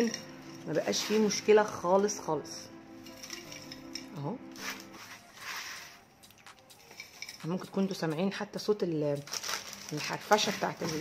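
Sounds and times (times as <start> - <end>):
granola rustling and crunching: 0.0 - 2.2, 9.1 - 11.0.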